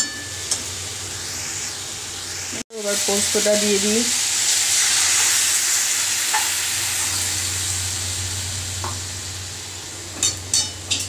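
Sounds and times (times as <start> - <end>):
vegetables sizzling in oil: 0.0 - 11.0.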